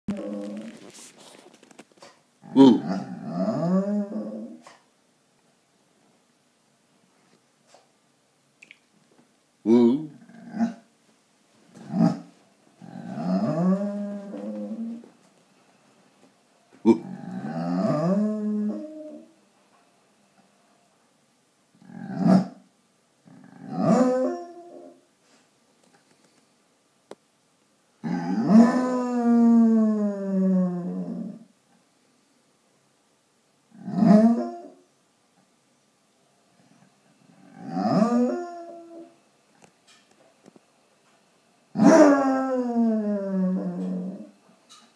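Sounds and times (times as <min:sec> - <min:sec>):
dog howling: 0:12.9 - 0:15.1, 0:17.2 - 0:19.3, 0:23.7 - 0:25.0, 0:28.1 - 0:31.4, 0:37.5 - 0:39.2, 0:41.8 - 0:44.4.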